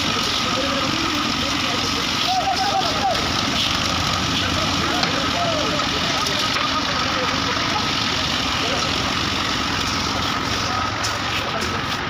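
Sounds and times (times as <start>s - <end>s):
small engine running: 0.0s - 12.0s
workers calling out: 0.0s - 12.0s.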